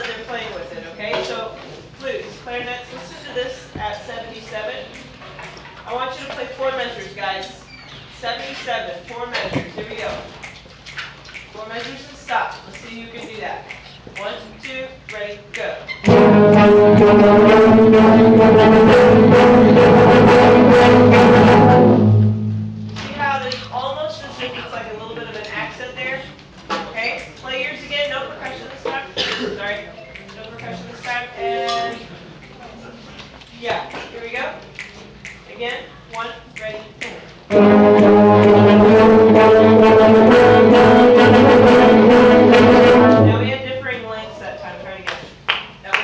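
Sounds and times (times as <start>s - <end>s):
concert band playing sustained chords: 16.1s - 23.8s, 31.4s - 32.0s, 37.5s - 43.7s.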